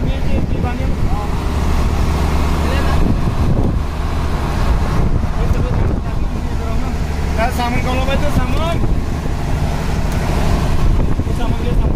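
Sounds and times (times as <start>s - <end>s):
boat engine droning: 0.0s - 11.9s.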